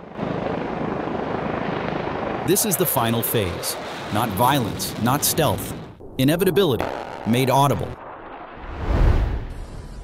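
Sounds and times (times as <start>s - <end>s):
helicopter rotors chopping: 0.0s - 8.1s.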